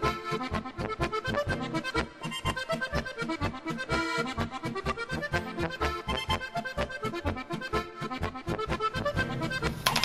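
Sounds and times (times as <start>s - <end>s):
accordion music with steady beat: 0.0s - 10.0s.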